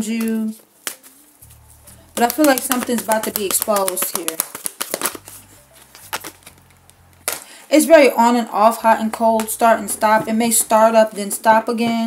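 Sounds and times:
card snaps and taps: 0.2 - 1.2, 2.2 - 7.5
cards being shuffled: 0.2 - 7.5.

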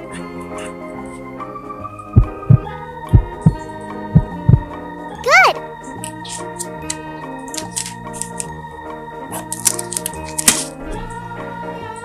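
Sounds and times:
heartbeat: 2.2 - 4.7.

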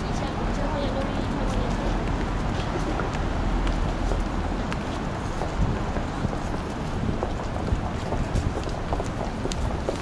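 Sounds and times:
city street ambience: 0.0 - 10.0
low rumble on microphone: 1.3 - 10.0.

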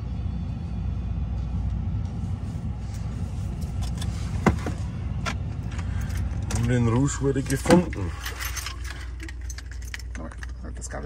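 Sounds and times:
engine humming: 0.0 - 11.0
keys jingling: 5.6 - 10.7.

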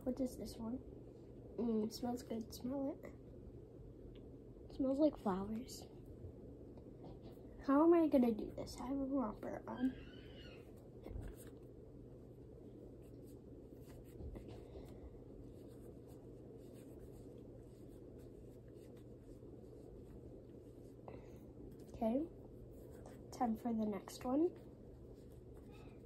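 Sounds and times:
ceiling fan humming: 0.0 - 26.0.

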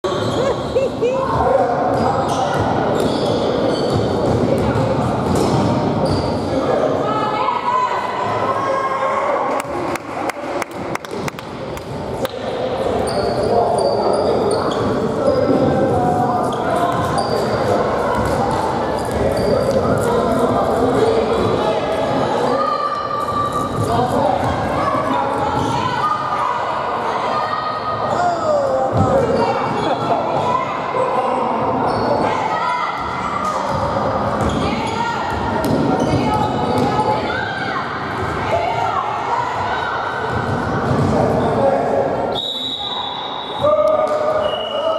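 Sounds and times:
sneakers squeaking on court: 0.1 - 0.9, 1.9 - 6.5, 13.0 - 15.8, 16.4 - 19.9, 33.7 - 37.0
shoes squeaking on hardwood floor: 3.0 - 4.2.

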